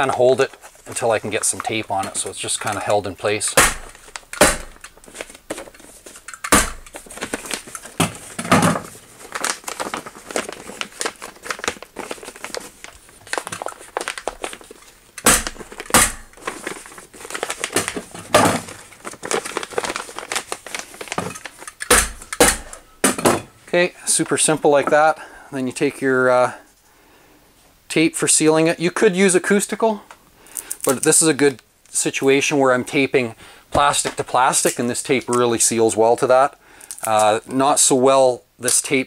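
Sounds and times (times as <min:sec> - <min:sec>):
plastic sheeting crinkling: 0:00.0 - 0:06.3, 0:06.9 - 0:21.8
hammer stapler strikes: 0:03.6 - 0:04.8, 0:06.4 - 0:06.8, 0:15.2 - 0:16.3, 0:21.8 - 0:23.2.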